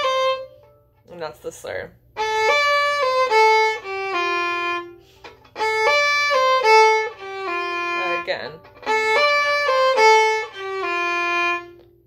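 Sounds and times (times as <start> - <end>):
solo fiddle playing a reel: 0.0 - 0.7, 2.2 - 11.8.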